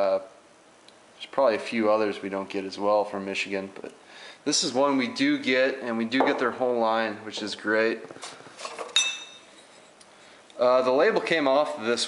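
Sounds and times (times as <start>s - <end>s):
glass bottles clinking: 8.6s - 9.7s.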